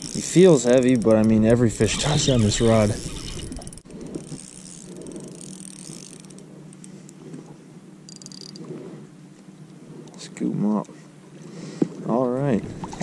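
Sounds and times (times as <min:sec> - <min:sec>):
fishing reel gears whirring: 0:00.0 - 0:07.3, 0:07.9 - 0:08.8.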